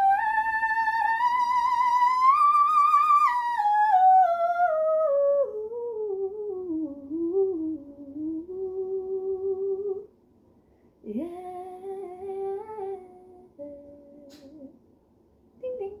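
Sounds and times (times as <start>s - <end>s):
woman humming: 11.1s - 14.8s.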